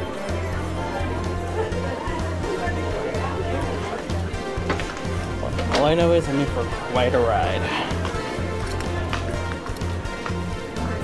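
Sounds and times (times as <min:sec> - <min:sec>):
background music with bass beat: 0:00.0 - 0:11.0.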